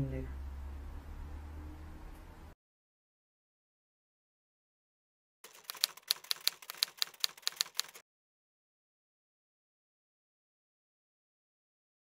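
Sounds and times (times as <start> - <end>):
typewriter key clicks: 5.5 - 8.0.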